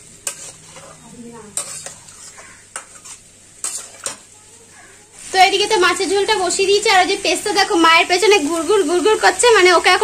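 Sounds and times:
gravy sizzling faintly: 0.0 - 10.0
spatula scraping metal pan: 0.2 - 4.3.

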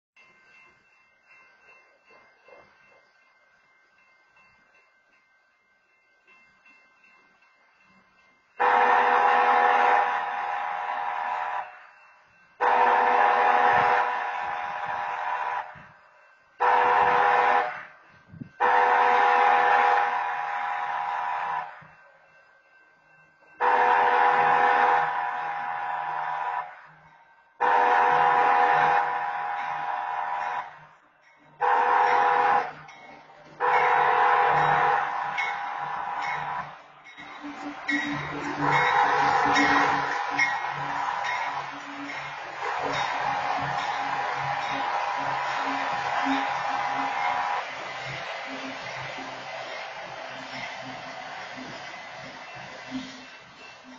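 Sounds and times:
train horn: 8.6 - 11.8, 12.6 - 16.0, 16.6 - 21.8, 23.6 - 26.9, 27.6 - 30.8, 31.6 - 53.9.

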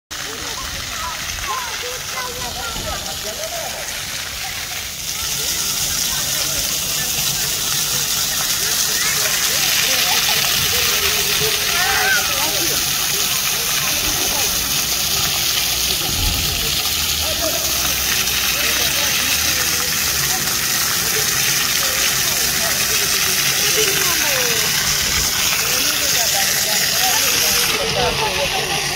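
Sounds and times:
fountain jets splashing: 0.1 - 28.9.

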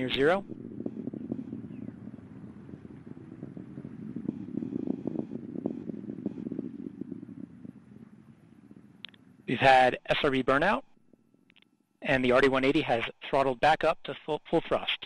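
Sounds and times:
rocket rumble with crackling: 0.0 - 11.5.

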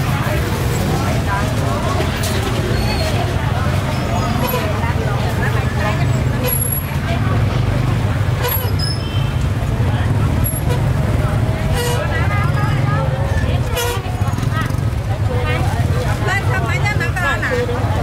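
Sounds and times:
motorbike engines rumbling: 0.0 - 18.0
people talking: 0.0 - 18.0.

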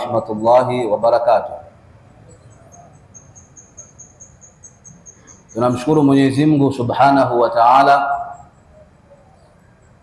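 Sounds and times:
man's voice in reverberant room: 0.0 - 1.7, 5.6 - 8.5
faint high chirp: 2.1 - 6.0, 8.1 - 10.0.

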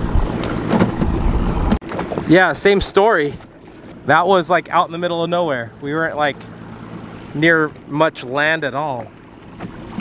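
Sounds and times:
wind and water rumble: 0.0 - 10.0
light knocks on boat: 8.9 - 10.0.

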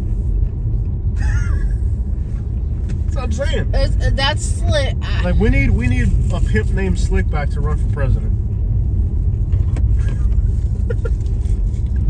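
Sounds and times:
car interior rumble: 0.0 - 12.0.

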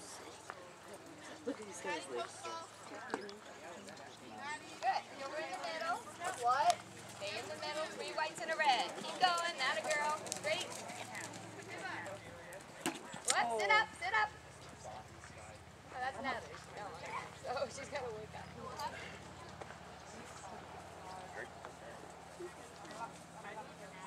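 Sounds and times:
people talking: 0.0 - 24.0.

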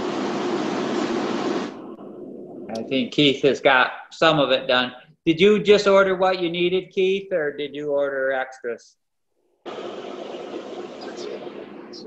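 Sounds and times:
steady open-line hiss: 0.0 - 8.8, 9.6 - 12.0.

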